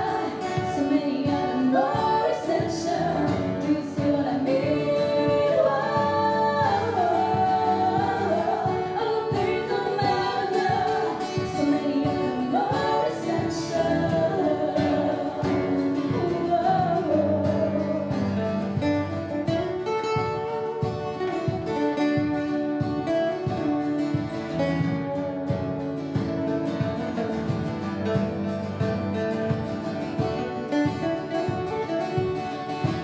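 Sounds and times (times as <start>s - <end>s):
two women singing: 0.0s - 19.6s
strummed acoustic guitars: 0.0s - 33.0s.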